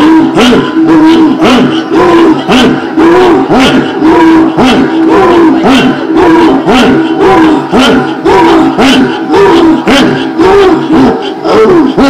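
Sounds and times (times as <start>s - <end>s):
voice chanting through loudspeakers: 0.0s - 12.0s.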